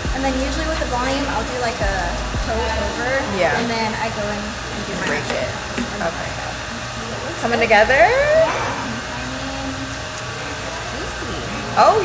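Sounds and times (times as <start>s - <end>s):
hair dryer running: 0.0s - 12.0s.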